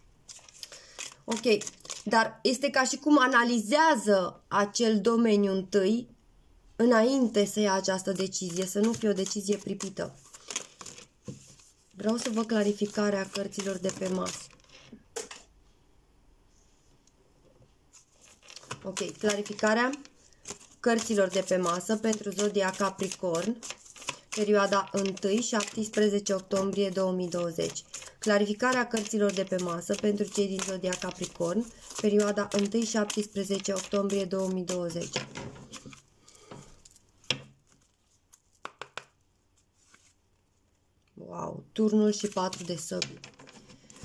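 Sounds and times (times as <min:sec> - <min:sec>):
cards shuffling clicks: 0:00.3 - 0:02.1, 0:08.5 - 0:15.5, 0:18.0 - 0:36.0.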